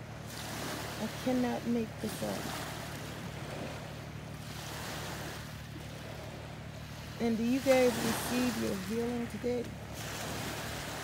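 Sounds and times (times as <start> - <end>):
low steady hum: 0.0 - 11.0
sea water washing: 0.0 - 11.0.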